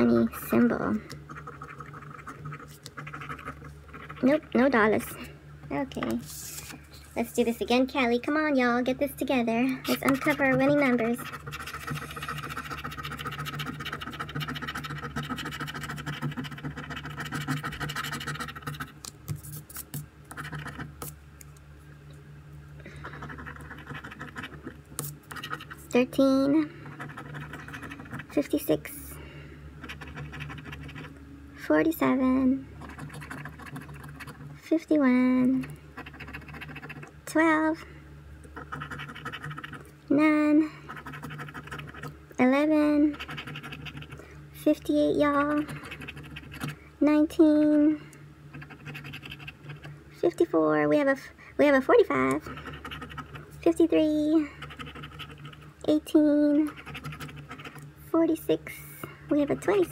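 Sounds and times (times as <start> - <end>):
coin scratching lottery ticket: 1.3 - 4.7, 9.9 - 21.1, 23.1 - 26.0, 26.8 - 28.7, 29.8 - 31.1, 32.8 - 34.5, 36.0 - 37.1, 38.6 - 39.8, 40.9 - 42.1, 43.1 - 44.2, 45.3 - 46.7, 48.5 - 49.9, 51.9 - 53.4, 54.6 - 55.7, 56.6 - 57.8.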